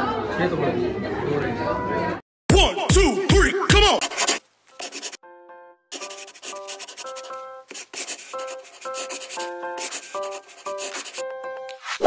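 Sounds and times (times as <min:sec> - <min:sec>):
pen scratching on paper: 0:04.0 - 0:05.2, 0:05.9 - 0:12.0.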